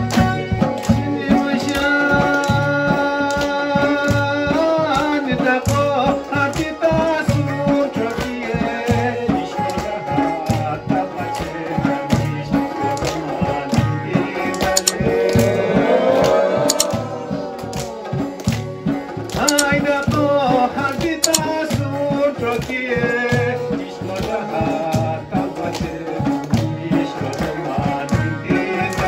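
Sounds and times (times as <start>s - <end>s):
drum beat: 0.0s - 29.0s.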